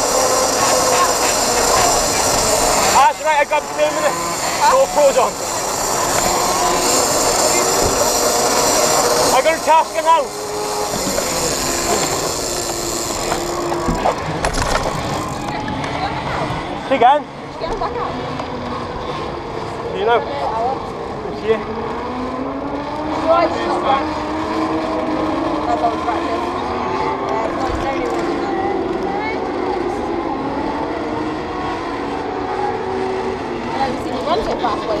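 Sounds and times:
faint motorcycle engine: 0:00.0 - 0:16.1
people talking indistinctly: 0:00.0 - 0:18.4
vehicle engines droning: 0:00.0 - 0:35.0.

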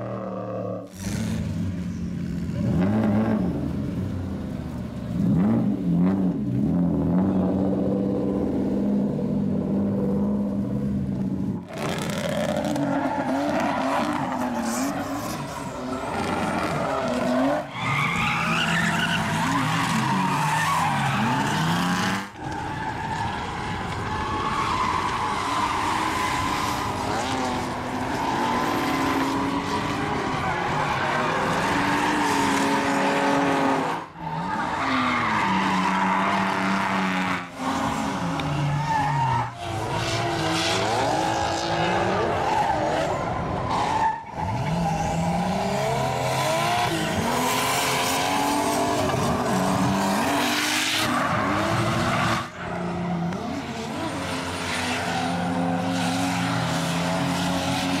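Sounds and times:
car engines revving hard: 0:00.0 - 0:58.0
tyres squealing and skidding: 0:11.6 - 0:58.0.

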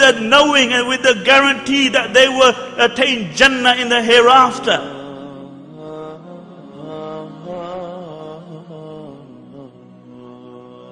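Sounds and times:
person chanting slow melody: 0:00.0 - 0:10.9.

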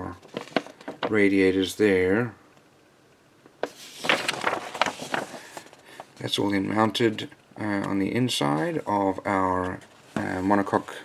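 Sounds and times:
paper page rustling: 0:00.2 - 0:01.1, 0:03.6 - 0:06.8.

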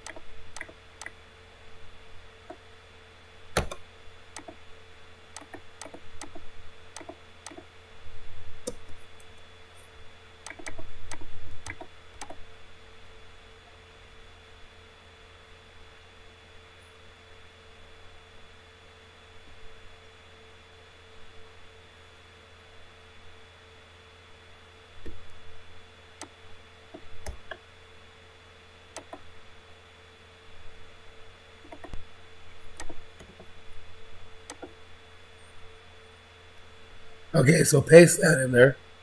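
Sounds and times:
computer mouse clicks: 0:00.0 - 0:01.2, 0:03.6 - 0:04.6, 0:05.4 - 0:07.7, 0:10.4 - 0:12.4, 0:28.9 - 0:29.2, 0:31.6 - 0:32.0, 0:32.7 - 0:33.5, 0:34.5 - 0:34.8
electrical hum: 0:00.0 - 0:39.0
keyboard keystrokes: 0:10.5 - 0:12.4.

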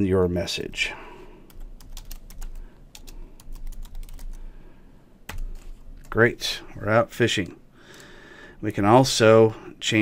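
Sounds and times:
typing on computer keyboard: 0:01.5 - 0:04.4.

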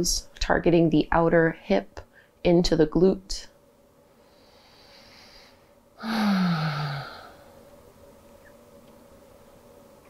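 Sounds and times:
woman sighing: 0:06.0 - 0:07.6.

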